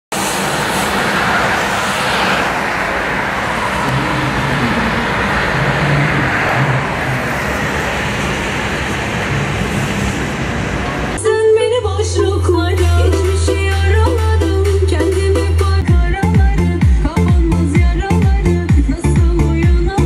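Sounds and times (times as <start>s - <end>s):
road traffic passing: 0.1s - 11.2s
vehicle passing loudly: 0.1s - 11.2s.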